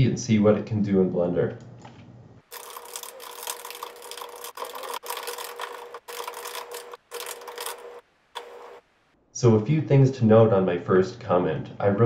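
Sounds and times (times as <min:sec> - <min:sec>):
fast typing on keyboard: 0:02.5 - 0:08.8.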